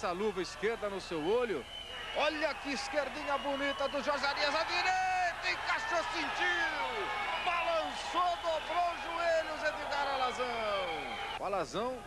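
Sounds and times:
man commentating excitedly: 0:00.0 - 0:12.0.

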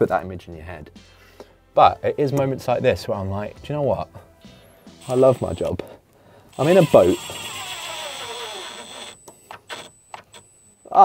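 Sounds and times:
tool motor whine slowing: 0:05.0 - 0:05.7, 0:06.5 - 0:10.8.

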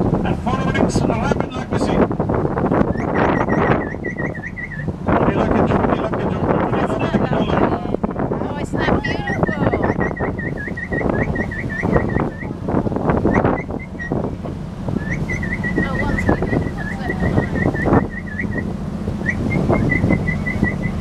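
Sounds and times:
boat engine humming: 0:00.0 - 0:21.0
water rushing and splashing: 0:00.0 - 0:21.0
high chirping whistle: 0:02.9 - 0:04.9, 0:09.6 - 0:12.6, 0:15.0 - 0:21.0.

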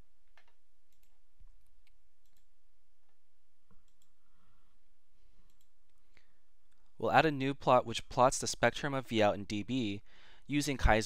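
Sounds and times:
low steady background noise: 0:00.0 - 0:11.0
computer mouse clicks: 0:00.3 - 0:02.5, 0:03.7 - 0:04.2, 0:05.4 - 0:07.0.

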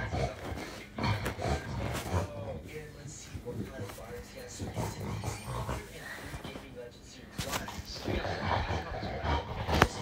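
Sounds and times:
animal low vocal sounds: 0:07.9 - 0:10.0.

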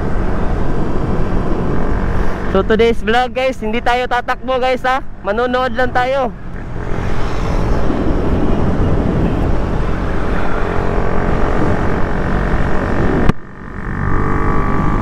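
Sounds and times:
motorcycle engine: 0:00.0 - 0:02.9, 0:05.0 - 0:15.0
wind noise on microphone: 0:06.4 - 0:15.0.

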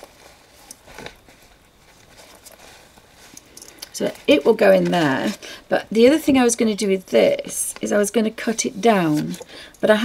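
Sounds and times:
cloth bag and books rustling: 0:00.0 - 0:05.5, 0:07.8 - 0:09.5.

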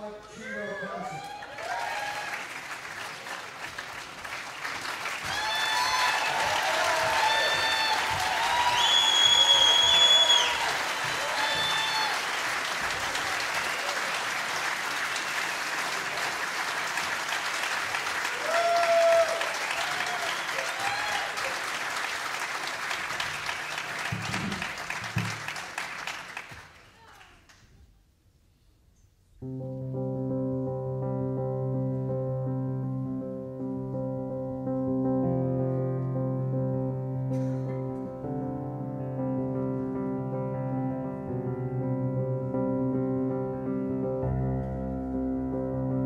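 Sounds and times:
crowd whooping: 0:00.4 - 0:02.6, 0:05.1 - 0:14.4, 0:18.2 - 0:21.8
concert audience applauding: 0:00.4 - 0:27.6
long high whistle: 0:07.4 - 0:10.8.

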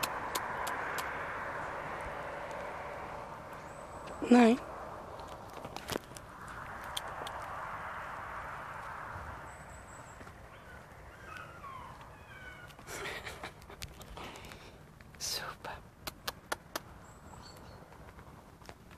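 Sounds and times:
sharp clicks: 0:00.0 - 0:01.2, 0:05.2 - 0:07.5, 0:16.0 - 0:16.9.

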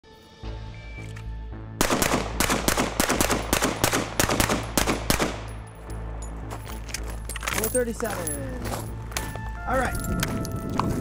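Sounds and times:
pistol firing shots in pairs: 0:01.8 - 0:05.6.

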